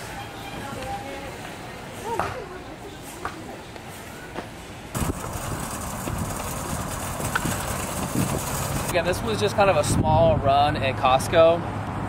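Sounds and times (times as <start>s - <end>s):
store background noise: 0.0s - 9.9s
shopping cart rolling on asphalt: 5.0s - 9.7s.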